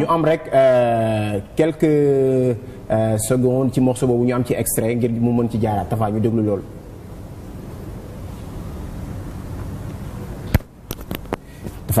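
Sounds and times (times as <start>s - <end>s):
low rumbling background noise: 0.0s - 12.0s
sharp pop: 10.4s - 11.3s.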